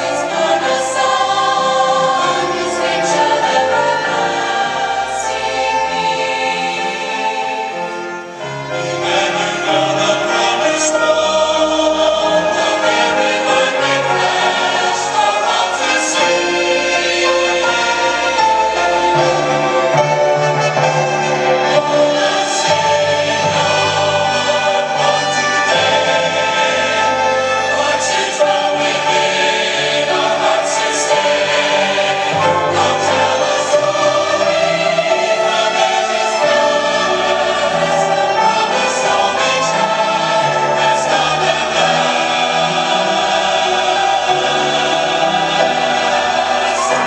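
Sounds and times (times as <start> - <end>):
church choir singing: 0.0 - 47.0
instrumental accompaniment: 0.0 - 47.0.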